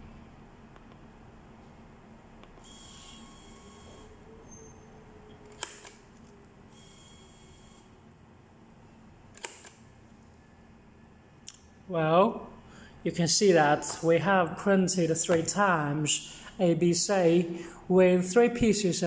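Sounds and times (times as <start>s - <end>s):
label printer motor whirring: 2.6s - 4.5s, 6.7s - 8.0s.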